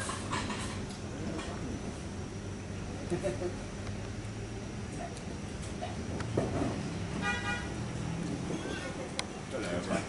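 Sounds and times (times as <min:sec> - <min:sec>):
low steady hum: 0:00.0 - 0:10.0
horn toot: 0:07.2 - 0:07.9.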